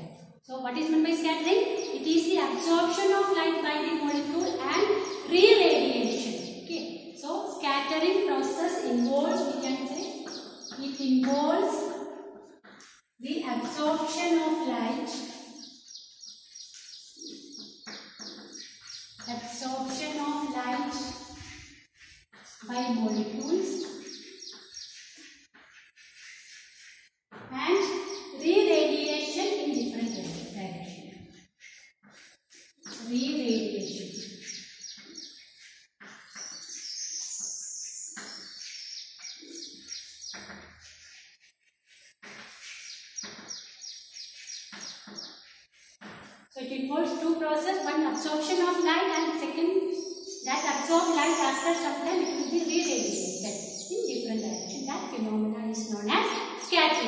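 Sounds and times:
bird chirping: 0.8s - 27.1s, 27.7s - 57.0s
chalk scraping on chalkboard: 16.4s - 55.2s.

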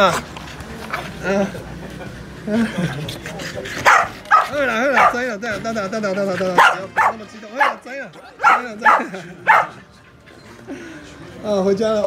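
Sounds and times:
dogs barking and yipping: 3.6s - 5.4s, 6.3s - 9.9s.

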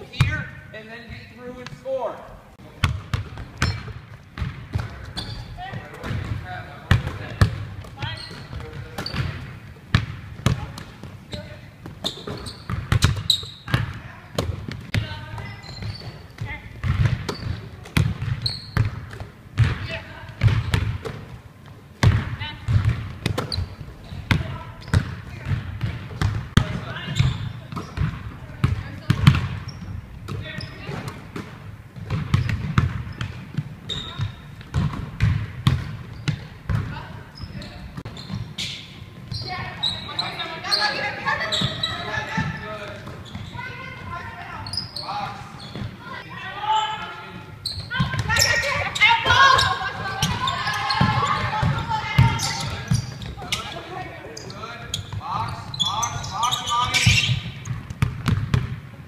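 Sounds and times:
basketballs bouncing on wooden floor: 2.8s - 44.6s, 45.6s - 46.7s, 47.7s - 59.0s.

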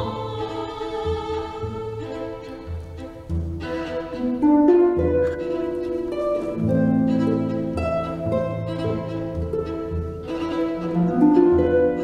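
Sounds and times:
low pulsing string notes: 0.0s - 12.0s
soprano singing: 0.0s - 12.0s
string quartet and harp: 0.0s - 12.0s.

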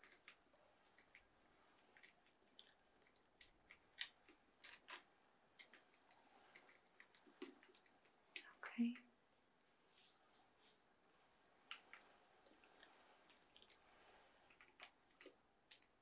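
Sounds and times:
computer keyboard clicks: 0.0s - 5.0s, 14.5s - 16.0s.

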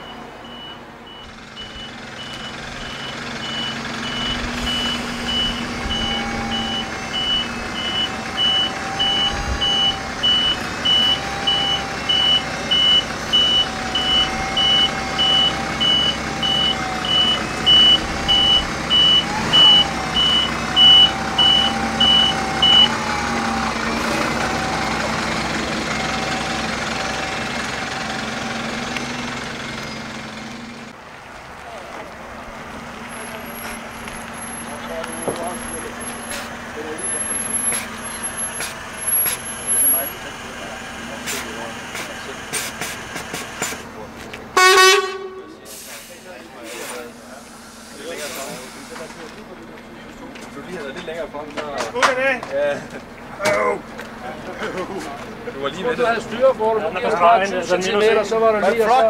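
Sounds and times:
reversing alarm beeping: 0.0s - 23.6s
diesel engine hum: 0.0s - 59.0s.

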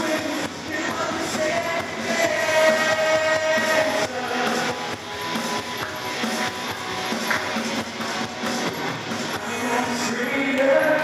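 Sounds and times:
voices singing: 0.0s - 5.0s, 9.4s - 11.0s
band playing worship song: 0.0s - 11.0s.

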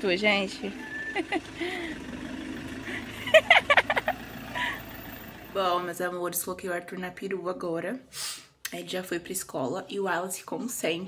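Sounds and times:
van engine idling: 0.0s - 5.9s.

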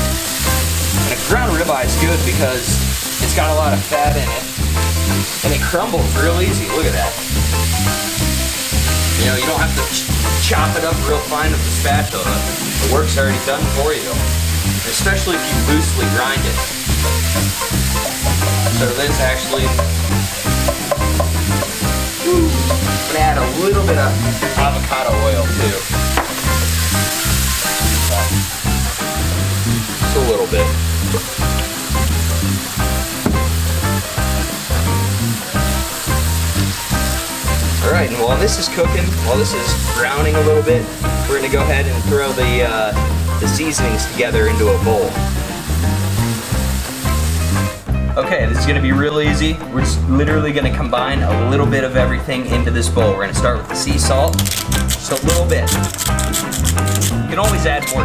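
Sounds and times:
meat and onions sizzling in skillet: 0.0s - 48.1s, 54.1s - 58.0s
background music with pulsing bass: 0.0s - 57.8s.

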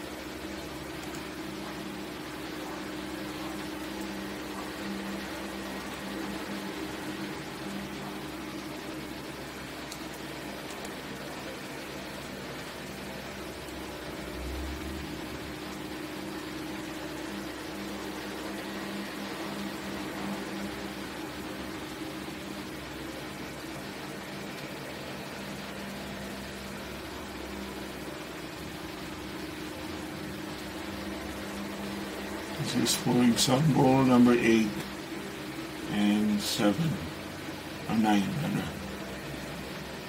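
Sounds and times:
background hiss: 0.0s - 40.0s
low hum: 0.0s - 40.0s.

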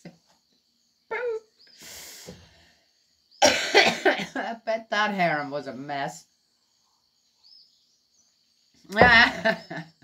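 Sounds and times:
woman's voice: 8.9s - 9.6s.

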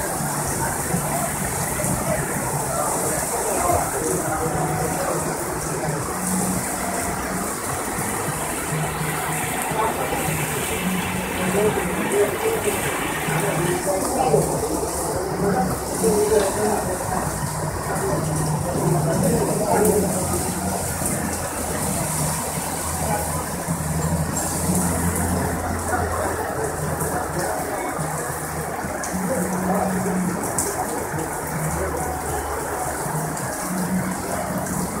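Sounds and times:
heavy rain on pavement: 0.0s - 35.0s.

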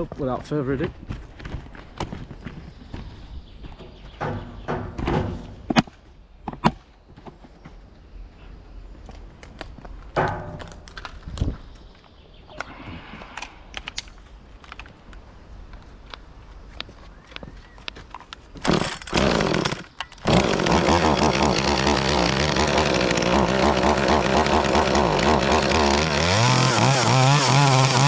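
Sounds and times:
footsteps on grass: 0.0s - 4.6s.

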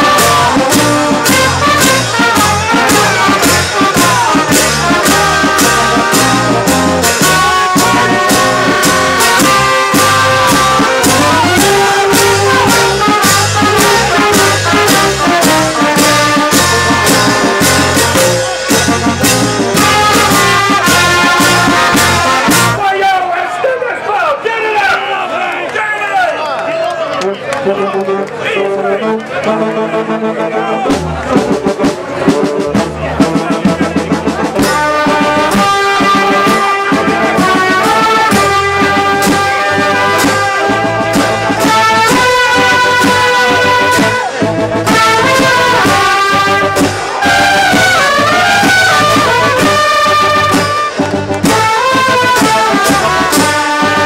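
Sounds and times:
walking bass line: 0.0s - 22.8s, 27.2s - 54.0s
drum beat: 0.0s - 22.9s, 30.8s - 54.0s
trumpets and trombones: 0.0s - 23.4s, 27.1s - 54.0s
crowd shouting and cheering: 0.0s - 54.0s.

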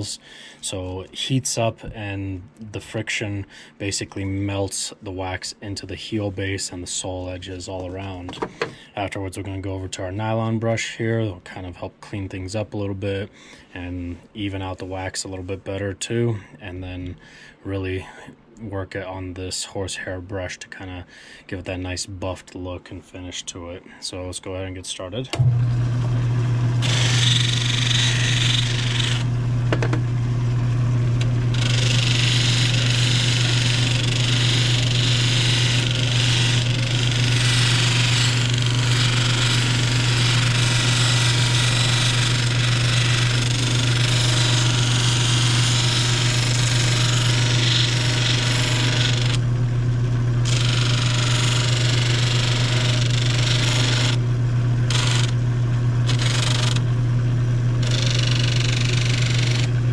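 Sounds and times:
machine motor humming: 25.3s - 59.9s.

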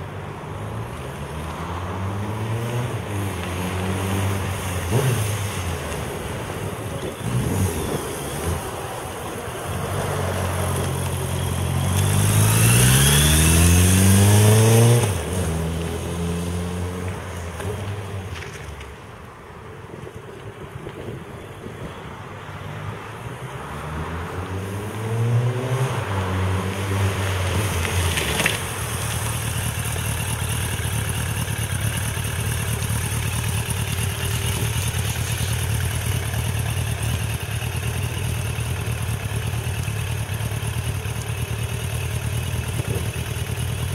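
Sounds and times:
motorcycle engine revving: 2.1s - 5.8s, 7.0s - 9.2s, 9.8s - 18.1s, 24.2s - 43.9s.

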